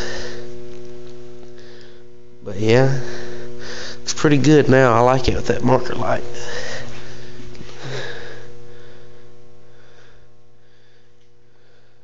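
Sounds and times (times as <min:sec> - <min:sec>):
low hum of held tones: 0:00.0 - 0:12.0.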